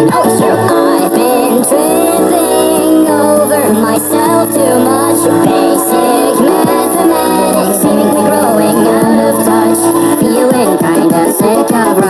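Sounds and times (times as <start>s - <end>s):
sped-up pop song: 0.0s - 12.0s.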